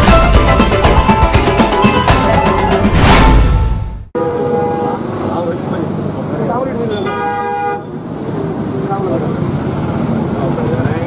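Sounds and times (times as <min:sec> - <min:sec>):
street noise: 0:00.0 - 0:11.0
vehicle horn toot: 0:04.2 - 0:05.4, 0:06.9 - 0:08.0.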